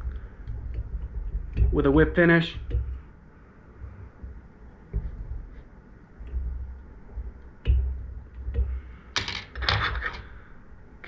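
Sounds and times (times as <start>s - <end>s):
soft bumps and small clicks: 0.0s - 3.0s, 4.1s - 8.8s.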